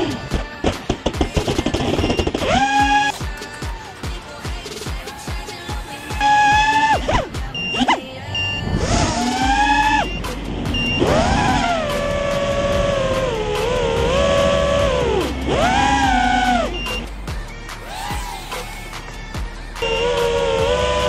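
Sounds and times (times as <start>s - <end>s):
background music: 0.0s - 21.0s
drone motors whining: 1.6s - 3.5s, 5.4s - 19.2s, 19.8s - 21.0s.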